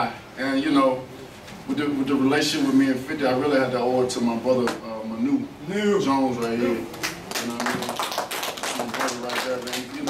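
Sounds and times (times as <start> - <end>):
people clapping: 6.9 - 10.0.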